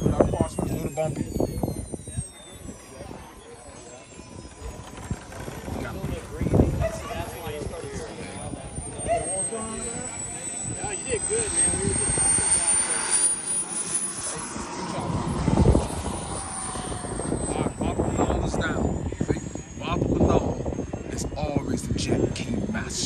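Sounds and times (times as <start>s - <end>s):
low rumble: 0.0s - 23.0s
model jet engine whining: 0.0s - 23.0s
people chatting: 0.0s - 23.0s.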